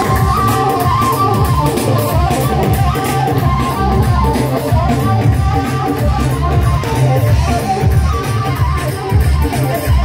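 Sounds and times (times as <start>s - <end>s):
heavy steady beat: 0.0s - 10.0s
live band music: 0.0s - 10.0s.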